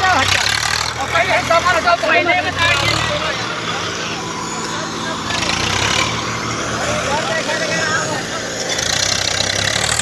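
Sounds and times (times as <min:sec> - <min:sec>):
people talking: 0:00.0 - 0:09.0
tractor diesel engine droning: 0:00.0 - 0:10.0.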